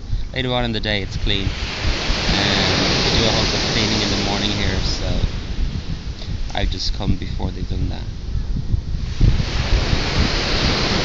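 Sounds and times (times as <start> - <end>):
wind buffeting microphone: 0.0 - 11.0
rushing hiss: 1.4 - 5.3.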